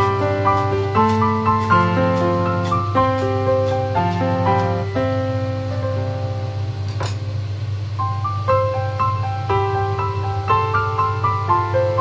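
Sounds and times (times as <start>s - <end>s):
gentle keyboard melody: 0.0s - 7.2s, 7.9s - 12.0s.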